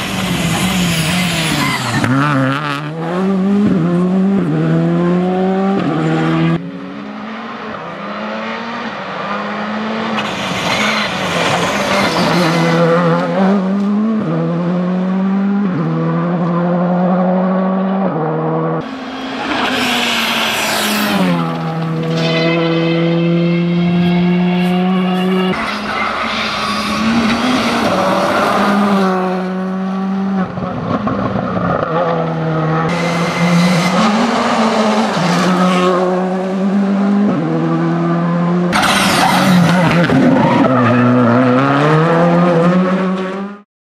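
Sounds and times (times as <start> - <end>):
rally car engine at full throttle: 0.0 - 43.6.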